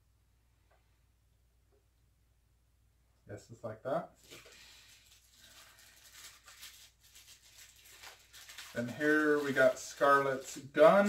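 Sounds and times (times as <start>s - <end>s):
plastic packaging crinkling: 4.2s - 11.0s.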